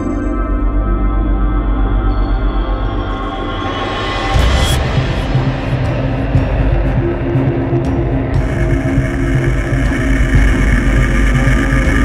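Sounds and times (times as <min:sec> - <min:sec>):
background music: 0:00.0 - 0:12.0
jet engine running: 0:04.8 - 0:12.0.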